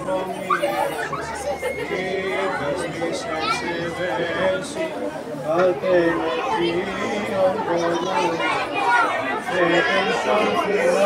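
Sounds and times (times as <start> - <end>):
overlapping voices: 0.0 - 11.0.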